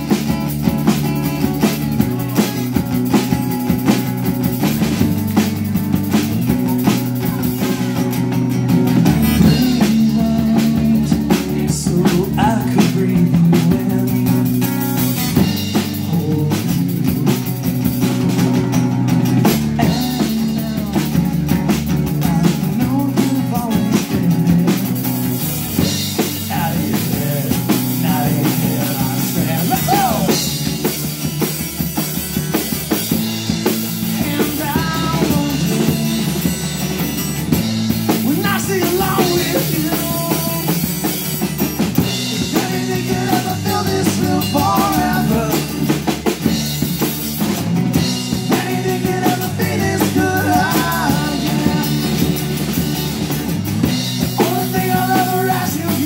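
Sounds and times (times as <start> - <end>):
drum kit playing rock beat: 0.0 - 56.0.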